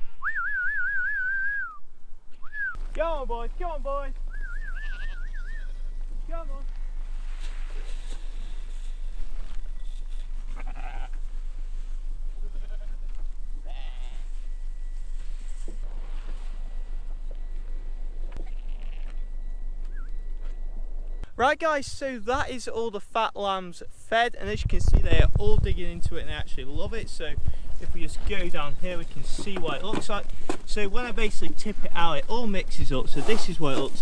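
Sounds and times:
person whistling: 0.0s - 1.8s, 2.4s - 2.8s, 4.3s - 5.7s
steady low hum: 0.0s - 33.8s
lambs bleating: 4.6s - 6.1s, 10.2s - 14.4s.

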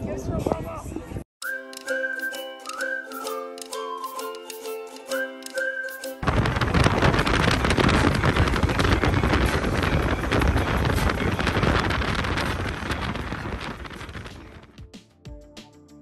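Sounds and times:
wind buffeting microphone: 0.0s - 1.2s, 6.2s - 14.7s.

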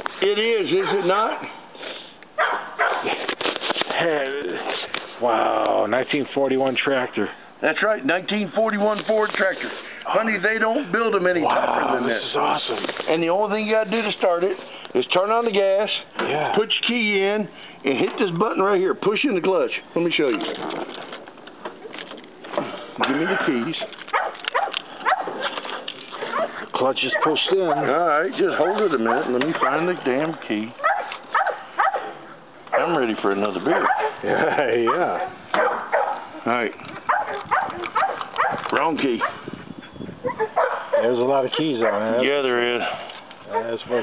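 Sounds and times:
voices talking: 0.0s - 2.9s, 3.8s - 44.0s
people's voices: 21.9s - 24.8s
dog yipping and whimpering: 26.2s - 28.0s, 30.8s - 32.2s, 37.1s - 38.6s, 40.2s - 41.1s.

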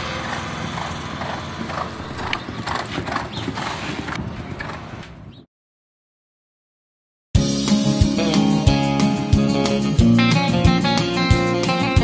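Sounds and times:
horse galloping on dirt: 0.2s - 5.2s.

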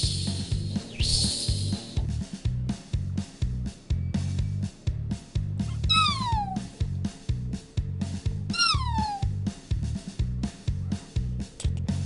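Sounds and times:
background music with steady beat: 0.0s - 12.0s
cat meowing: 5.7s - 6.6s, 8.5s - 9.3s.

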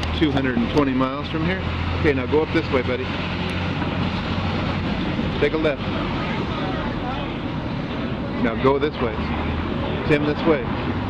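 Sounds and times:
traffic rumble: 0.0s - 11.0s
faint chatter: 4.7s - 11.0s.

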